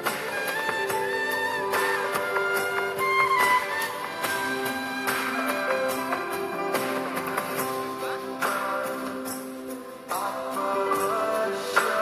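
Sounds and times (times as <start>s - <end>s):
bamboo flute melody: 0.0s - 8.3s
percussion strikes: 0.0s - 12.0s.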